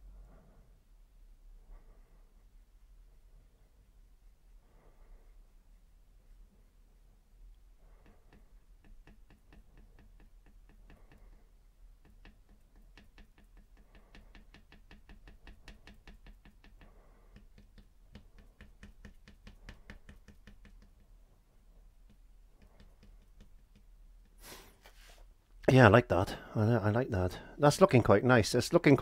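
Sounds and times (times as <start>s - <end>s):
brush tapping on canvas: 7.9s - 24.7s.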